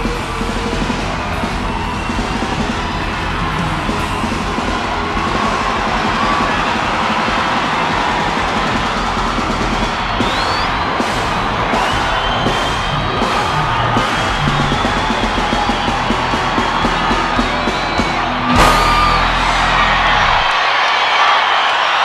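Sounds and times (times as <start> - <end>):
live band music: 0.0 - 20.5
crowd cheering and screaming: 0.0 - 22.0
short rising high tone: 18.3 - 20.5.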